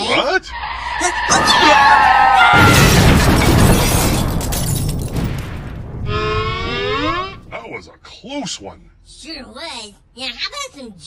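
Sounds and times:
explosion blast: 2.4s - 6.7s.

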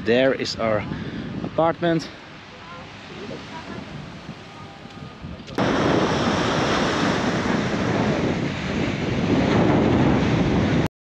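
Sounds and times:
sea surf: 0.0s - 10.9s
wind noise on microphone: 0.0s - 10.9s.

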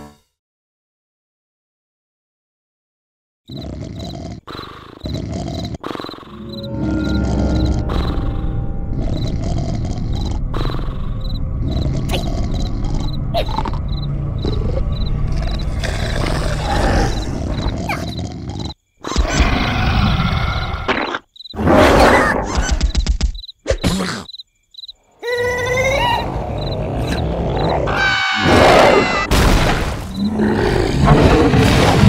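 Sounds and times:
cartoon growl rumble: 3.5s - 20.9s, 25.2s - 29.2s, 30.2s - 32.0s
background music: 6.3s - 16.1s.

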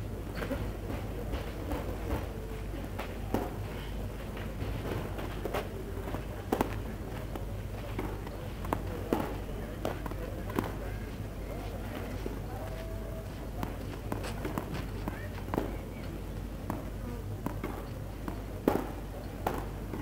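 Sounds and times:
spectators chattering: 0.0s - 20.0s
steady low hum: 0.0s - 20.0s.

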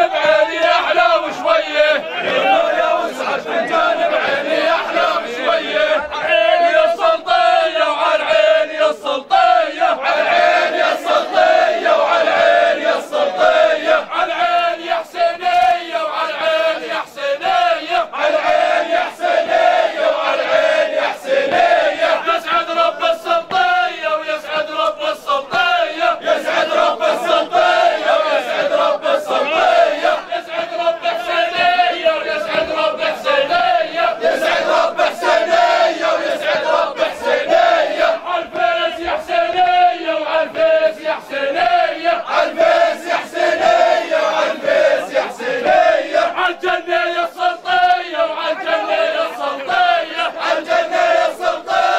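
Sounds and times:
men chanting and singing: 0.0s - 51.9s.

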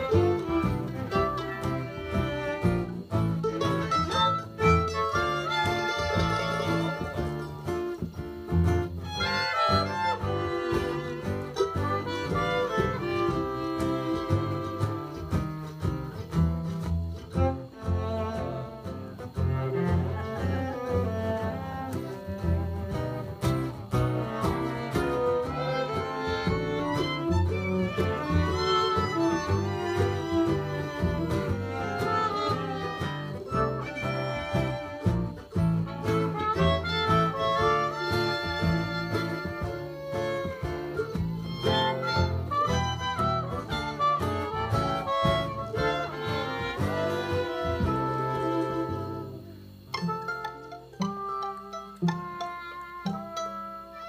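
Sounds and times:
bowed fiddle: 0.0s - 54.0s
cello: 0.0s - 54.0s
plucked double bass: 0.0s - 54.0s
strummed acoustic guitar: 0.0s - 54.0s.

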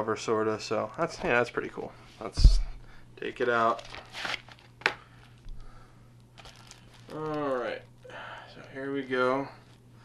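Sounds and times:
plastic wrap rustling: 3.4s - 5.6s, 6.2s - 8.0s.

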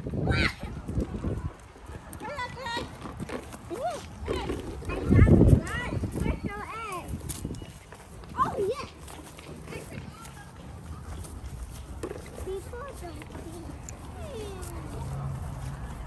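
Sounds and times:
footsteps and handling noise: 0.8s - 16.0s.

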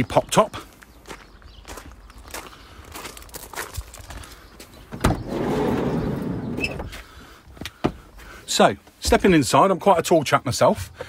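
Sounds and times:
footsteps walking: 0.7s - 4.8s
sliding van door opening: 4.9s - 7.0s.

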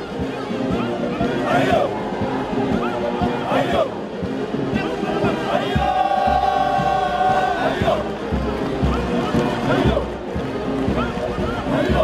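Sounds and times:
long held marching band note: 0.0s - 12.0s
steady bass drum beat: 5.6s - 12.0s.

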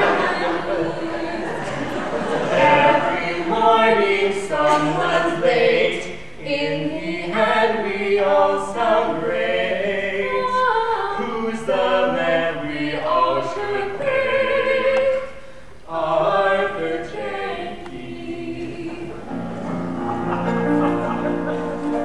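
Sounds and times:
man and woman singing a cappella: 0.0s - 19.3s.

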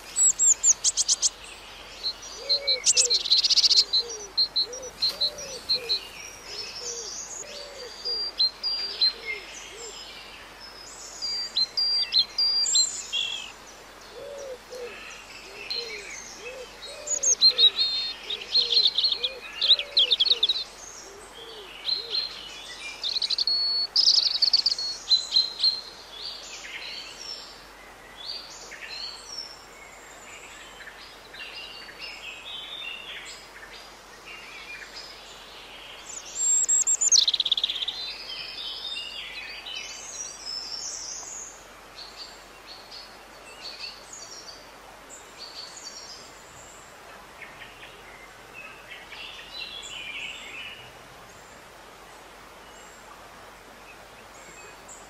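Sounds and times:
birds chirping and trilling: 0.0s - 27.5s, 34.4s - 51.6s.

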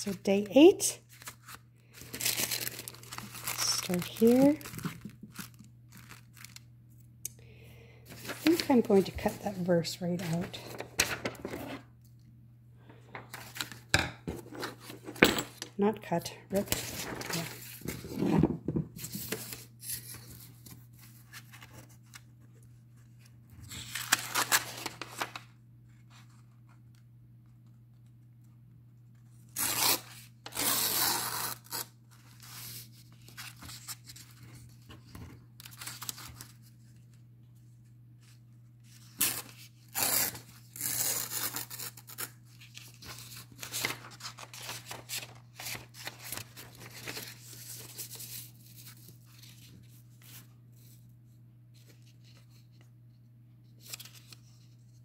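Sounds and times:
paper tearing: 29.5s - 32.7s, 39.0s - 42.4s.

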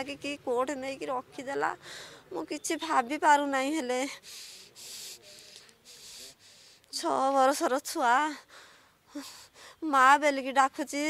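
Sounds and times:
woman breathing hissily: 4.1s - 6.9s.

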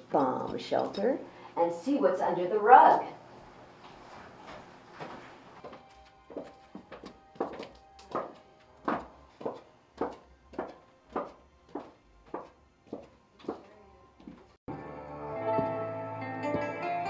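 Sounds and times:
music with thudding drum beat: 15.5s - 16.9s.

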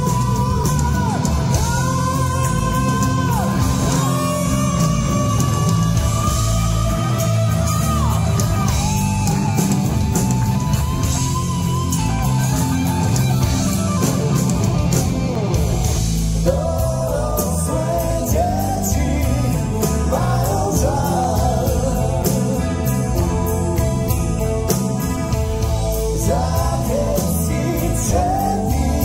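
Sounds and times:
man singing: 0.0s - 8.8s, 16.4s - 24.2s, 25.6s - 29.0s
heavy metal band playing live: 0.0s - 29.0s.

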